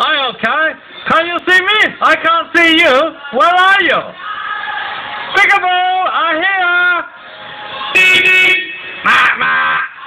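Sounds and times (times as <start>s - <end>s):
forklift horn blasts: 8.0s - 9.6s.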